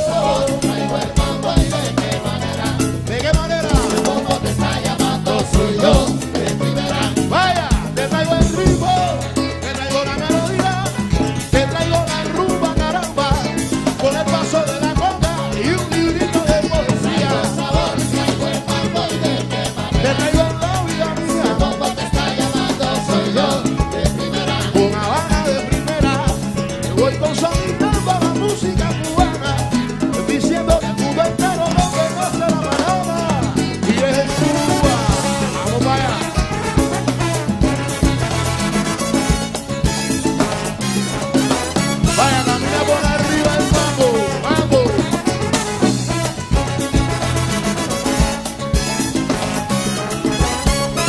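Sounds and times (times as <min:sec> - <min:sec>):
congas and timbales: 0:00.0 - 0:51.0
latin dance band playing: 0:00.0 - 0:51.0
sliding melody line: 0:00.0 - 0:51.0.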